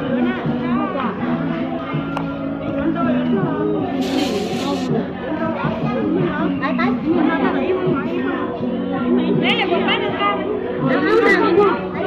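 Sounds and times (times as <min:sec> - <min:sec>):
women talking and chattering: 0:00.0 - 0:12.0.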